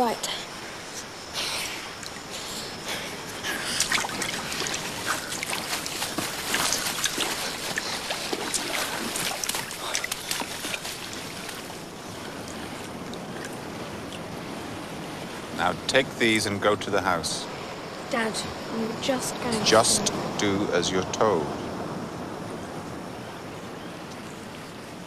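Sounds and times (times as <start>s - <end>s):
water running and splashing: 1.4s - 14.4s.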